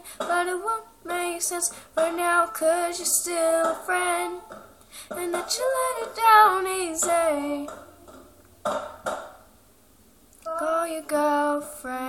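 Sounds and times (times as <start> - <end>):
a cappella singing: 0.0 - 8.0, 10.4 - 12.0.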